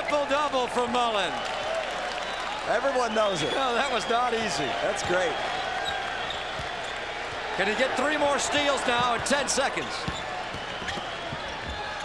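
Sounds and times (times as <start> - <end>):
arena crowd noise: 0.0 - 12.0
basketball dribbling on hardwood: 10.0 - 11.9.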